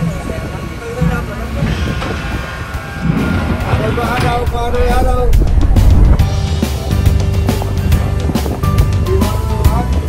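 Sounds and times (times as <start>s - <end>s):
voices: 0.0s - 6.2s
subway train rumbling on rails: 0.0s - 10.0s.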